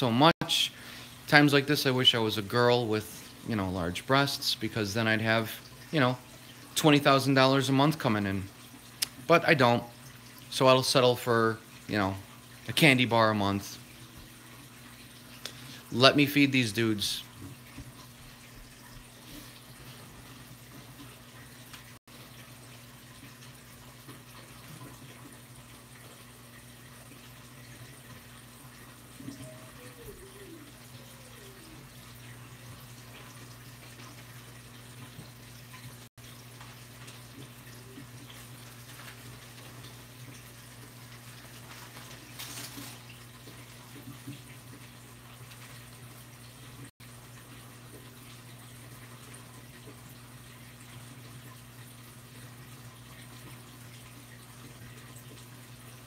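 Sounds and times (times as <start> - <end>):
aquarium water trickling: 0.0 - 56.0.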